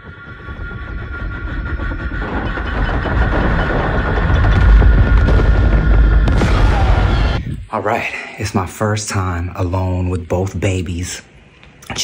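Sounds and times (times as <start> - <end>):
low rumble: 0.0 - 7.9
steady whine: 0.0 - 12.0
deep explosion rumble: 0.7 - 7.8.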